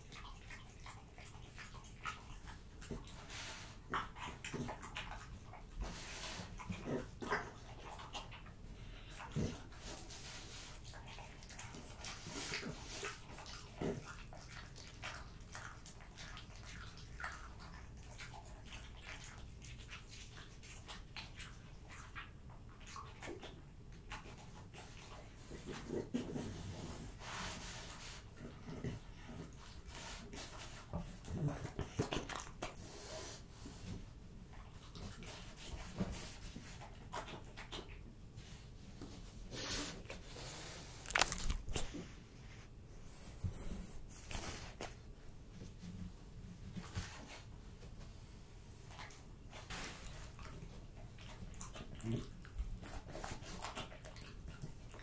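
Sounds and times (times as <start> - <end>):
dog chewing wetly: 0.0 - 42.2, 48.7 - 55.0
dog lip-smacking and licking: 40.9 - 42.1, 48.9 - 55.0.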